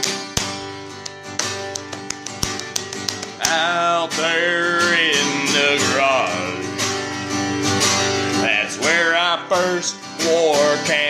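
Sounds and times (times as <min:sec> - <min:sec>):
sharp knocks on the beat: 0:00.0 - 0:03.7
acoustic guitar country music: 0:00.0 - 0:11.0
person singing: 0:03.4 - 0:06.8, 0:08.4 - 0:11.0.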